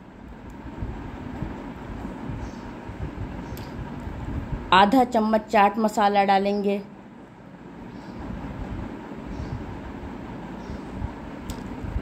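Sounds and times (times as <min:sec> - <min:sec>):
sharp click: 0:11.4 - 0:11.7.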